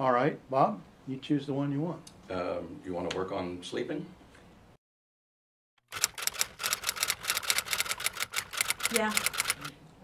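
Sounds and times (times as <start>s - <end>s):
rapid sharp clicks: 5.8s - 9.7s.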